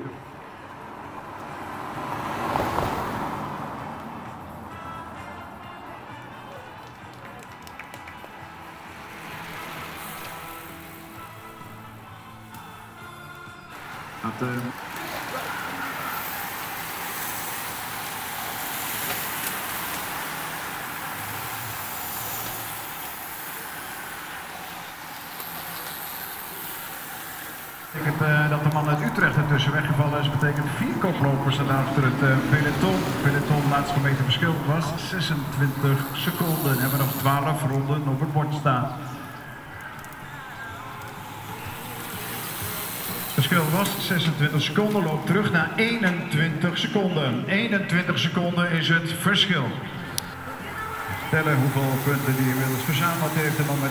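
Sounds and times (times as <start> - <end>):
racing bicycles rushing past: 0.0 - 49.0, 49.7 - 53.9
car driving past: 0.8 - 5.8, 8.4 - 12.0, 13.8 - 44.5
faint background music: 3.4 - 53.9
public address voice: 13.7 - 16.6, 27.9 - 42.0, 43.2 - 53.9.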